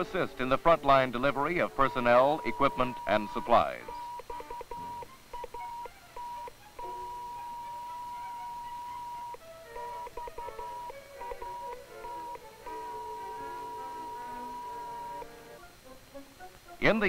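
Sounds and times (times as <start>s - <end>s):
high beacon beep pulses: 1.8s - 15.3s.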